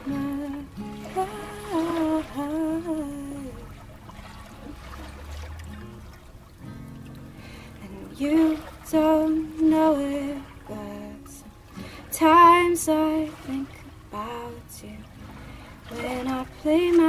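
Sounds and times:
person singing long held notes: 0.0s - 3.7s
acoustic guitars playing: 0.0s - 17.0s.

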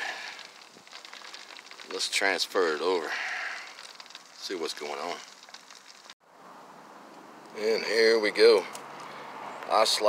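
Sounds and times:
food sizzling in pan: 2.9s - 6.2s.

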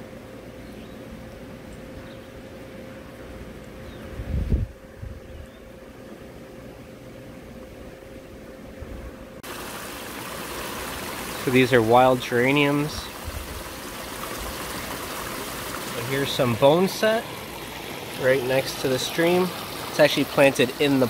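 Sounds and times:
faint steady hum: 0.0s - 21.0s
water splashing down waterfall: 9.4s - 21.0s.

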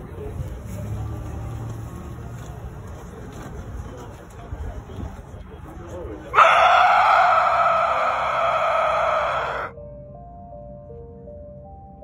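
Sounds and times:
sparse background music: 6.0s - 12.0s
raspy growling scream: 6.4s - 9.7s.

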